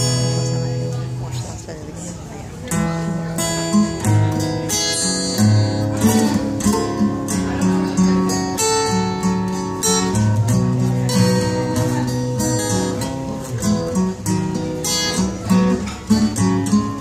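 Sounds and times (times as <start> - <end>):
acoustic guitar strumming chords: 0.0 - 17.0.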